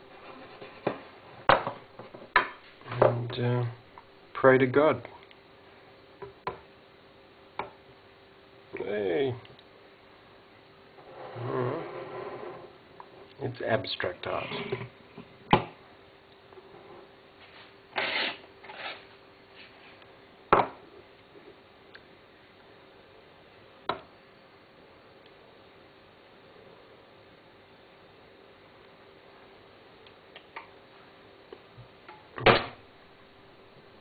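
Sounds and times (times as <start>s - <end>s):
scraping rub on bench: 0.0s - 1.4s, 11.0s - 12.7s, 16.7s - 19.8s
faint steady hum: 0.0s - 34.0s.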